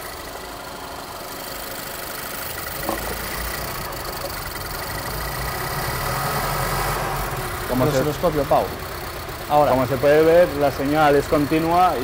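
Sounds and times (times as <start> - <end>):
car engine idling unevenly: 0.0 - 12.0.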